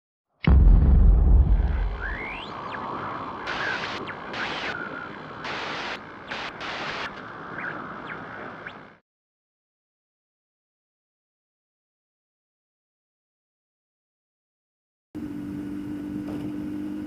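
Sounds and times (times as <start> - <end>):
harsh static bursts: 1.2 - 9.0
steady hiss: 2.8 - 8.5.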